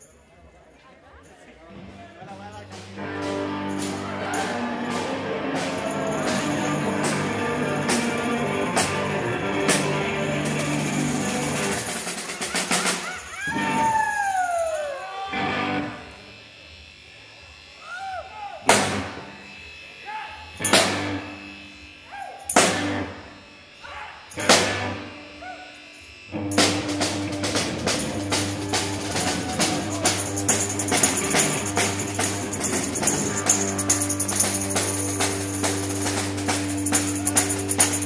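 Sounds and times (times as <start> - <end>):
guitar and drums: 1.7 - 16.3, 18.6 - 19.4, 20.6 - 21.5, 22.3 - 23.4, 24.3 - 38.0.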